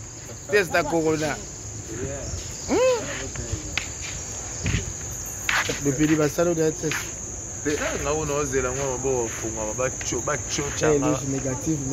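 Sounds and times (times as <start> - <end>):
crickets trilling: 0.0 - 11.9.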